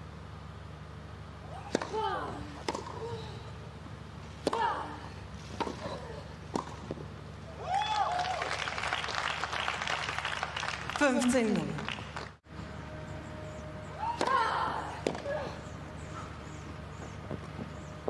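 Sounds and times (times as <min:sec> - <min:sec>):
racket striking tennis ball: 0:01.6 - 0:03.0, 0:04.4 - 0:04.8, 0:05.5 - 0:07.1, 0:14.1 - 0:15.3
crowd applauding: 0:07.7 - 0:12.4.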